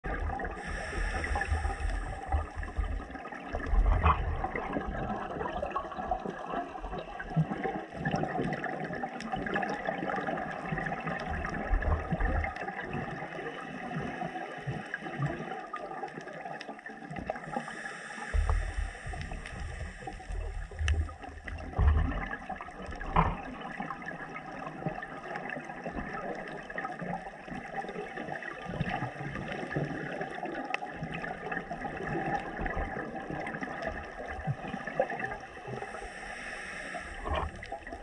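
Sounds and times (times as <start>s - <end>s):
gurgling bubbles: 0.0s - 38.0s
underwater water rush: 0.0s - 38.0s.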